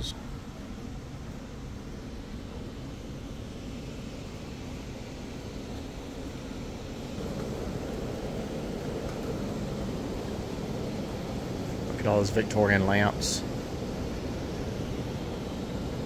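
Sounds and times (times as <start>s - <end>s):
indoor rumble and hiss: 0.0s - 16.0s.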